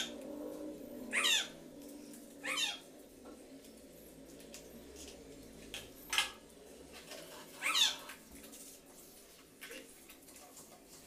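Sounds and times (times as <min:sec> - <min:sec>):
animal calling: 0:01.0 - 0:01.6, 0:02.4 - 0:02.9.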